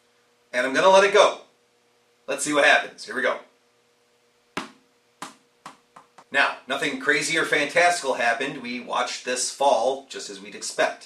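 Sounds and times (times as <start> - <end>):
squish ball bouncing on floor: 4.6 - 6.3.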